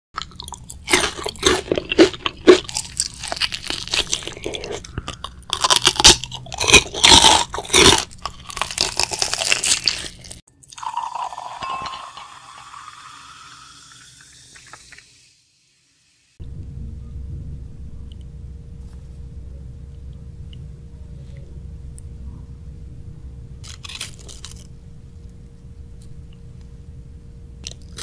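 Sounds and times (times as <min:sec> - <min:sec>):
crunchy chewing of fried chicken: 0:00.2 - 0:10.4, 0:23.6 - 0:24.7, 0:27.6 - 0:28.0.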